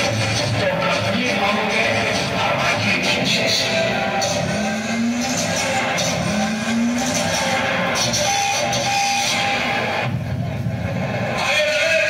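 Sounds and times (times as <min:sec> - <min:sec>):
distorted loudspeaker music: 0:00.0 - 0:12.0.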